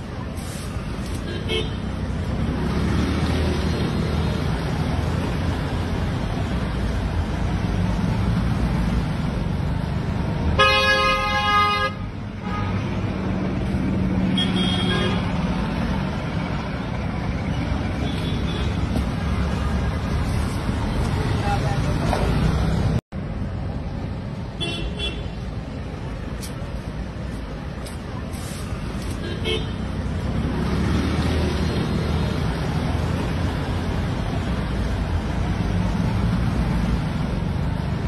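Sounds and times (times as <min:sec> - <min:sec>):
street traffic: 0:00.0 - 0:38.0.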